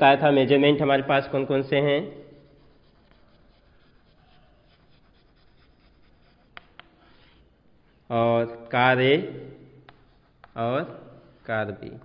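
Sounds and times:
chalk scratching on chalkboard: 0:02.1 - 0:07.5, 0:09.8 - 0:12.0
chalk tapping on board: 0:04.7 - 0:07.3, 0:09.8 - 0:12.0.

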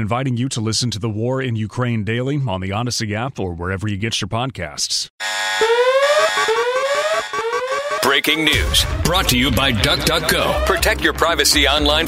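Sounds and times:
electronic whooping alarm: 0:05.2 - 0:10.9.

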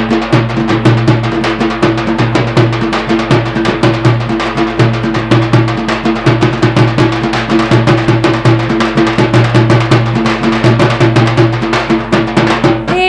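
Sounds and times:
fast even drumbeat: 0:00.0 - 0:13.0.

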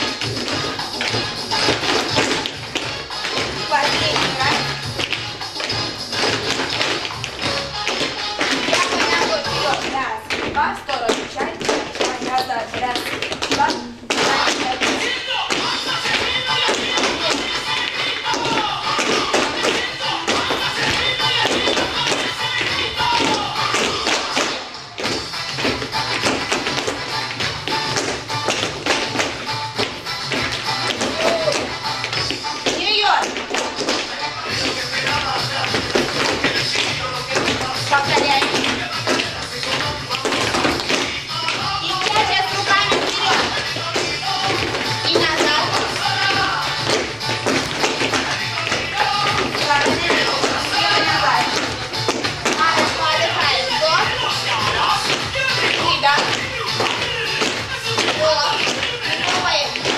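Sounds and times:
latin dance music: 0:00.0 - 0:59.9
shoes tapping on hard floor: 0:00.0 - 0:59.9.

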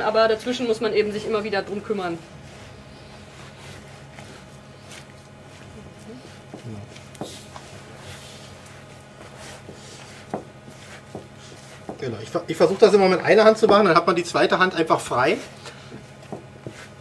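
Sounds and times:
low room hum: 0:00.0 - 0:17.0
hands kneading dough: 0:01.3 - 0:17.0.

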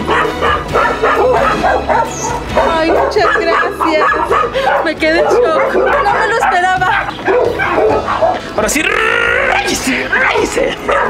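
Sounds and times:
dog barking: 0:00.0 - 0:08.6, 0:09.4 - 0:11.0.

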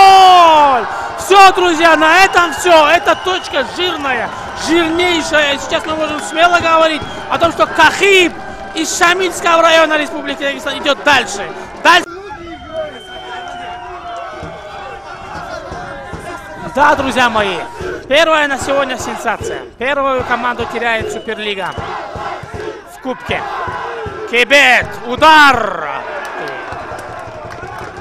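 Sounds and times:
men calling out: 0:00.0 - 0:26.8
low field ambience: 0:00.0 - 0:28.0.

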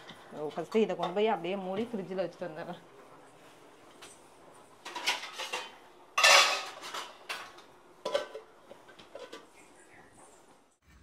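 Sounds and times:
metal plate clattering on bowl: 0:04.8 - 0:09.5.

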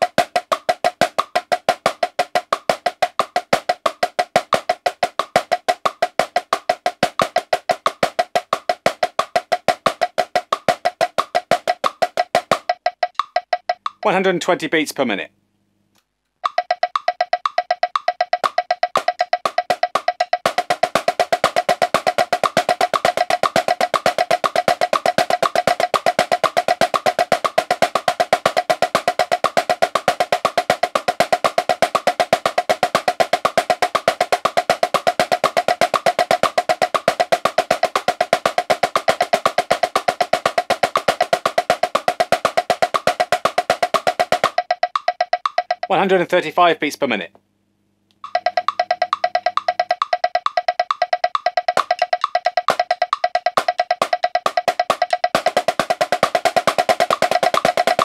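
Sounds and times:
marching snare drum: 0:00.0 - 0:14.2, 0:16.4 - 0:46.2, 0:48.2 - 0:58.0
metronome clicking: 0:10.6 - 0:14.2, 0:15.9 - 0:46.0, 0:48.1 - 0:58.0.

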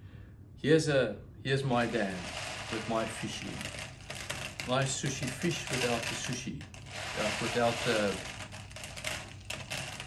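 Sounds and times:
paper pieces rustling in a bowl: 0:01.8 - 0:10.0.

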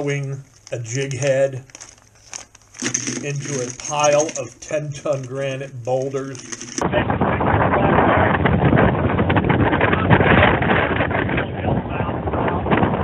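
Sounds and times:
wind buffeting microphone: 0:06.8 - 0:13.0.

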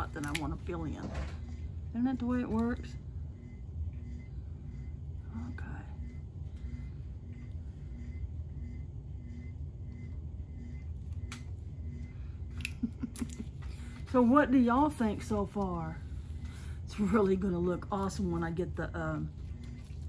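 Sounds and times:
faint pulsing tone: 0:00.0 - 0:20.0
low room hum: 0:00.0 - 0:20.0.

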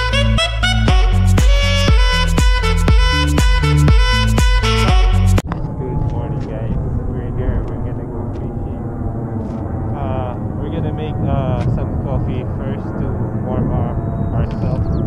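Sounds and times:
steady low rumble: 0:00.0 - 0:15.0.

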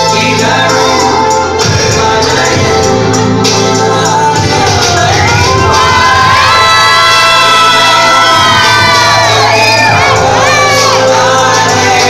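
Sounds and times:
dance music over sound system: 0:00.0 - 0:12.0
audience cheering and shouting: 0:04.4 - 0:12.0
high drawn-out screams: 0:05.3 - 0:11.4.

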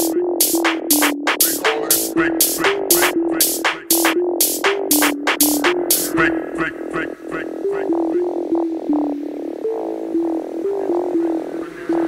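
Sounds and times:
electronic lead melody: 0:00.0 - 0:12.0.

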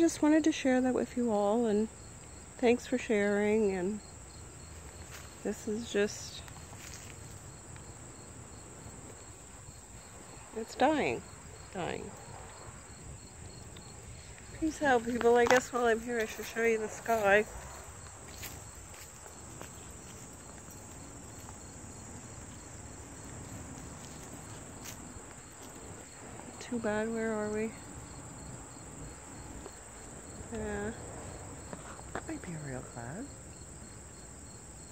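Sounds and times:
insect chirping: 0:00.0 - 0:34.9.

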